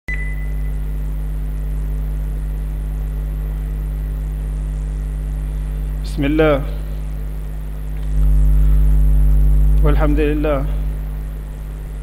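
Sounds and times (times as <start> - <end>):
short high beep: 0.1 - 0.7
steady low hum: 0.1 - 12.0.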